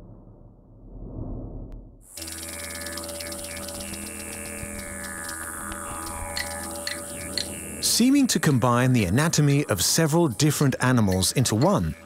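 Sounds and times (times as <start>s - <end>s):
low music drone: 2.1s - 12.0s.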